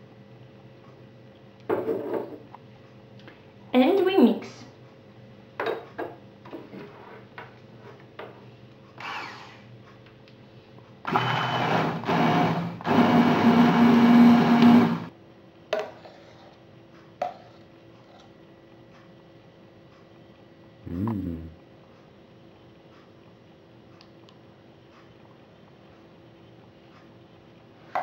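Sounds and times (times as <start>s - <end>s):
electric blender running: 11.1s - 15.1s.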